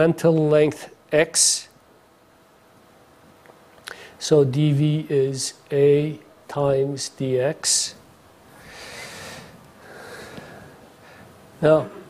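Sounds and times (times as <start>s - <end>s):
person breathing in: 8.5s - 11.3s.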